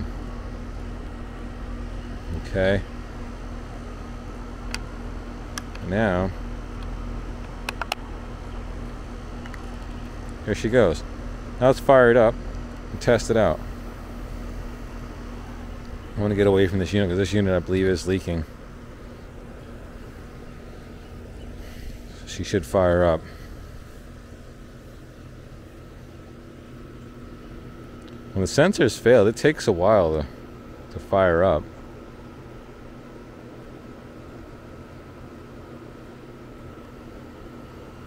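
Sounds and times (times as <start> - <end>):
low hum: 0.0 - 34.0
plastic housing clicks: 6.8 - 8.0, 9.4 - 10.0.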